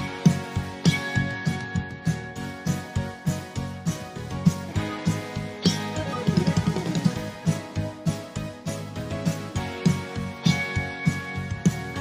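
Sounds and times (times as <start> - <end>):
drum kit beat: 0.0 - 12.0
pop song instrumental: 0.0 - 12.0.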